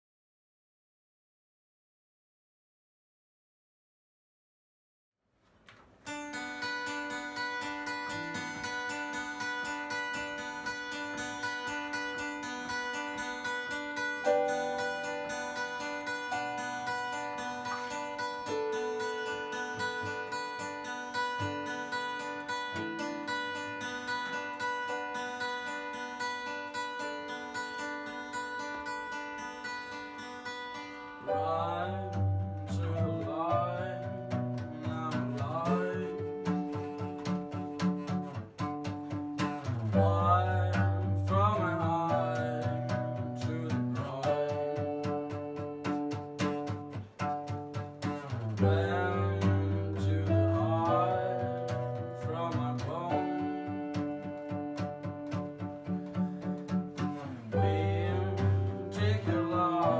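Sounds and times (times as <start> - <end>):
acoustic guitars strumming: 5.7 - 59.9
sustained keyboard chords: 6.8 - 24.3, 31.0 - 37.8, 40.0 - 47.8, 48.6 - 59.9
person singing: 31.2 - 37.3, 39.9 - 45.4, 48.6 - 54.6, 57.5 - 59.9.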